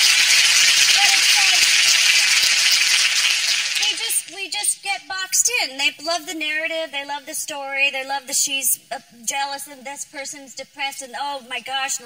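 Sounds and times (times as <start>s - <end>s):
studio audience applauding: 0.0s - 4.4s.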